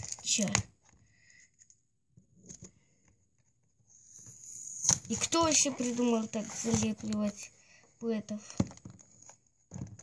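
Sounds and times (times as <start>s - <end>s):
cardboard box rustling and scraping: 5.2s - 7.2s.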